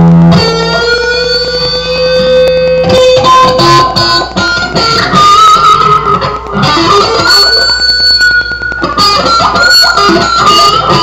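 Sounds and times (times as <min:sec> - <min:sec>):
electric guitar lead through amp: 0:00.0 - 0:11.0.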